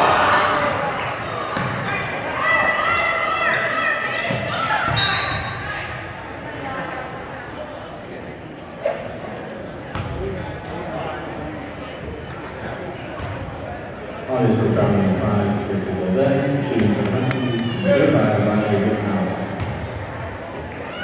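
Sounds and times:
spectators shouting and talking: 0.0s - 21.0s.

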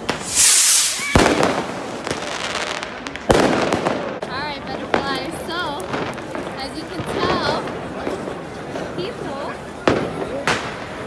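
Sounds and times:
firework hissing burst: 0.0s - 3.1s
firecracker bangs: 0.0s - 4.2s
faint firecracker pops: 9.8s - 11.0s.

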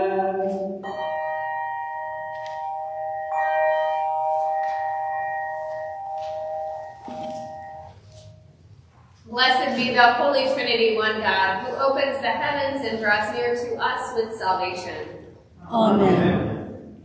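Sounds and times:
pipe organ chords: 0.0s - 8.8s
chanting voices: 15.6s - 17.0s.

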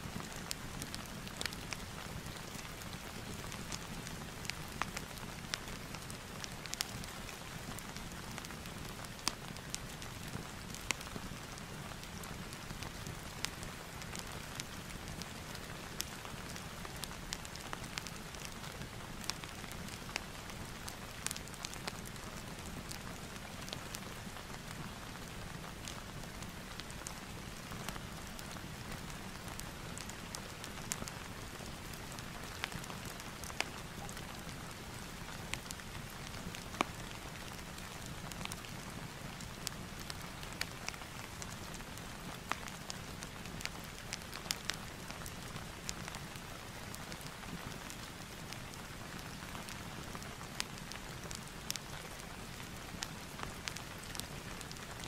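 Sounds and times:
fire popping and crackling: 0.0s - 55.0s
steady rain: 0.0s - 55.0s.

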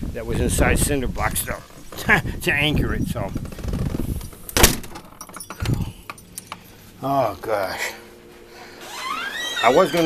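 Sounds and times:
wind rumble on microphone: 0.0s - 4.4s, 5.6s - 6.0s.

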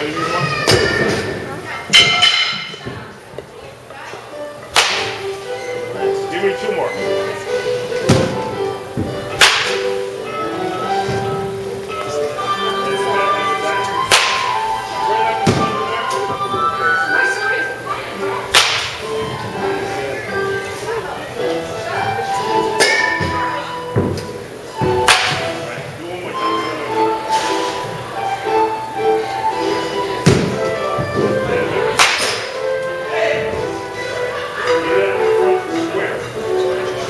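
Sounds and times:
background music: 4.2s - 37.0s
bat cracking against ball: 4.7s - 5.2s, 9.3s - 9.8s, 14.1s - 14.6s, 18.5s - 19.0s, 25.0s - 25.5s, 32.0s - 32.5s
balls landing with thuds: 30.2s - 31.3s.

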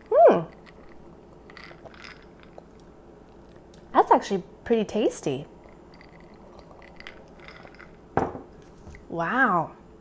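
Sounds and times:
person sipping and swallowing: 0.5s - 3.9s, 5.6s - 8.0s.

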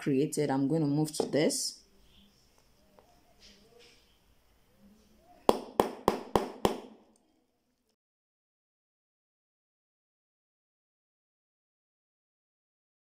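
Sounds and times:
hammer striking hole punch: 5.5s - 6.9s.

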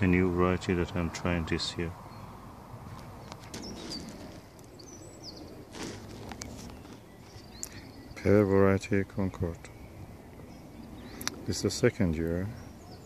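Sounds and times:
bird chirps: 1.9s - 13.0s
rustle or knock: 3.0s - 4.6s, 5.7s - 7.5s.

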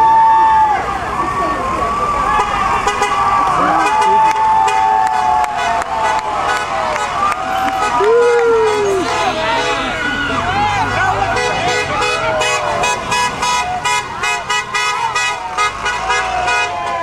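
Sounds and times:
buses driving past: 0.0s - 17.0s
voices shouting: 0.0s - 17.0s
vehicle horns blasting: 2.3s - 10.4s, 11.0s - 17.0s.

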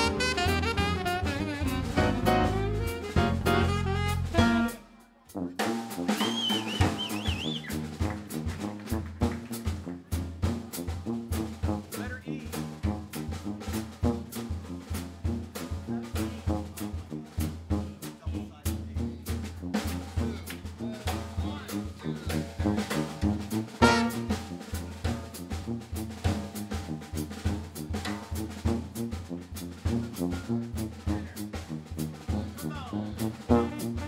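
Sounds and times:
sousaphone bass line: 0.0s - 4.7s
drum kit snare and rimshot hits: 0.0s - 4.9s, 5.6s - 34.0s.

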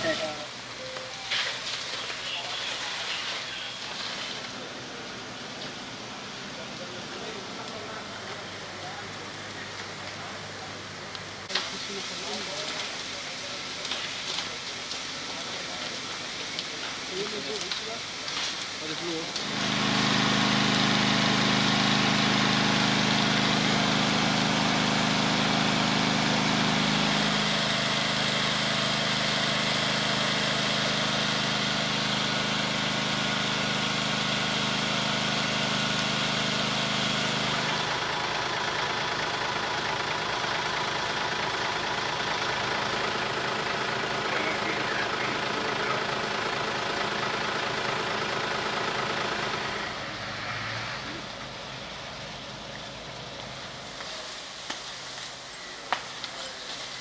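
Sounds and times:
diesel engine idling: 0.0s - 57.0s
steady hiss: 6.8s - 21.2s, 51.1s - 57.0s.

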